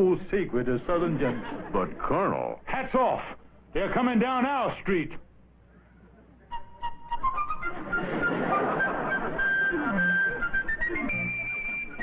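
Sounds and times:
march music led by a fife: 6.5s - 12.0s.

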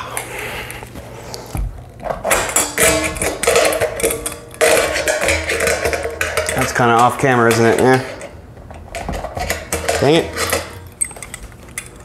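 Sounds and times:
metal keg knocks and clanks: 2.2s - 11.2s.

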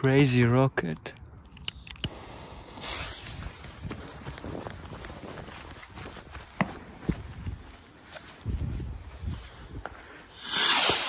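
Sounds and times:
firework fuse hissing: 2.1s - 3.6s, 10.2s - 11.0s
sharp pop: 10.4s - 11.0s.

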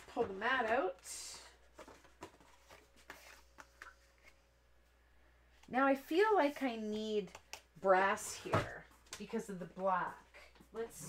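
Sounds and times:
paper rustling: 1.6s - 4.4s.

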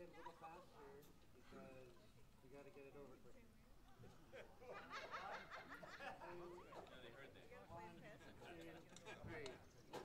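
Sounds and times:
audience laughing softly: 4.1s - 6.5s.

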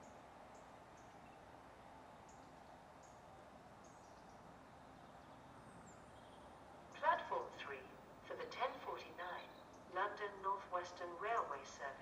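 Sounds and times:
faint background hiss: 0.0s - 12.0s
loudspeaker announcement: 7.0s - 12.0s.

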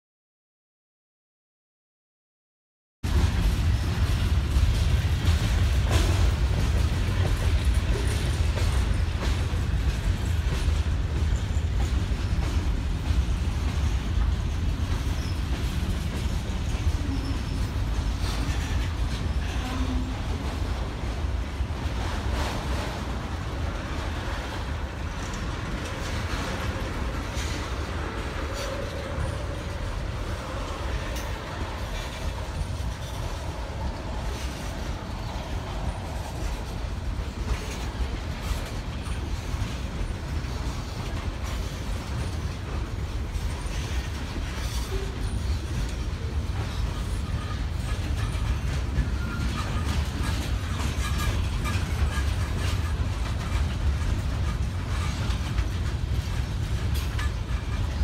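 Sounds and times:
freight cars rolling on rails: 3.0s - 58.0s.

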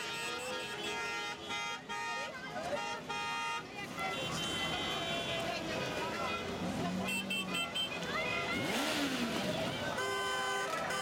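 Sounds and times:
vehicle engine revving: 7.9s - 10.0s.

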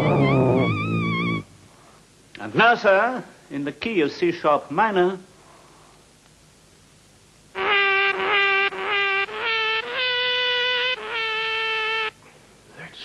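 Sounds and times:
tune of buzzy fart notes: 0.0s - 1.6s, 7.6s - 12.1s.

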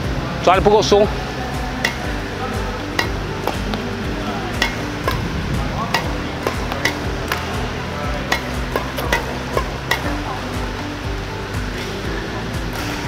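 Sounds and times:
background music: 0.0s - 13.0s
racket tapping shuttlecock: 1.6s - 10.8s.

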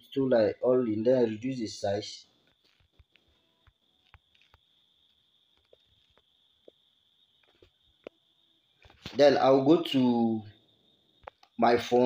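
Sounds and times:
thin steady high whine: 0.0s - 12.0s
faint ticks: 2.4s - 8.2s, 11.1s - 11.6s.

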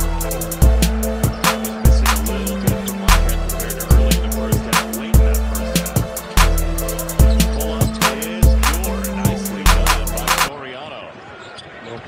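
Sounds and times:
music with heavy bass beat: 0.0s - 10.5s
arena crowd noise: 0.0s - 12.0s
commentator speaking: 1.6s - 11.1s.

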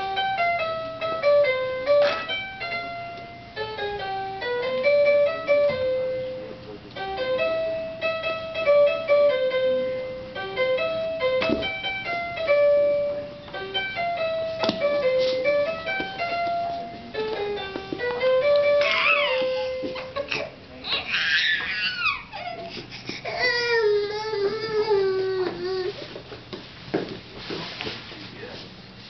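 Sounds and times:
toy playing piano-like tune: 0.0s - 20.4s.

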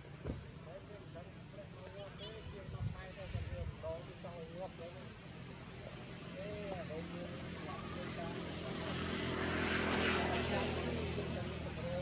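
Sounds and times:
propeller aircraft engine drone: 3.0s - 12.0s.

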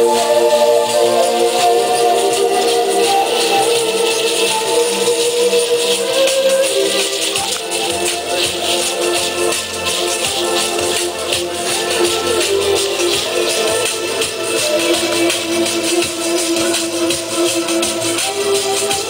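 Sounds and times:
rattles shaking: 0.0s - 19.0s
wooden flute melody: 0.0s - 19.0s.

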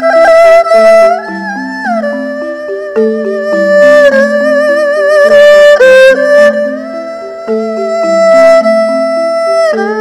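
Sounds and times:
erhu melody with vibrato: 0.0s - 10.0s.

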